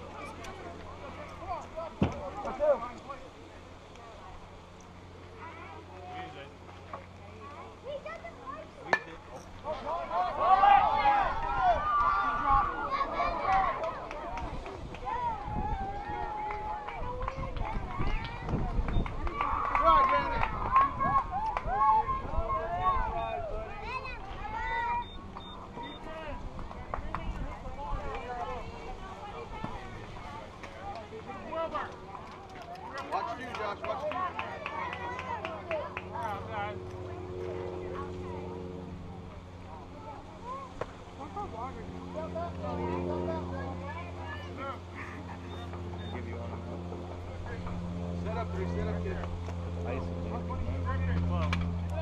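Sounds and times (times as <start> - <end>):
voices calling and cheering: 0.0 - 52.0
wind rumble on microphone: 14.4 - 23.7.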